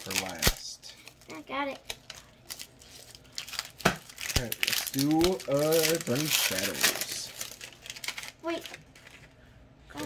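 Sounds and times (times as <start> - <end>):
foil wrapper crinkling and tearing: 0.0 - 9.4.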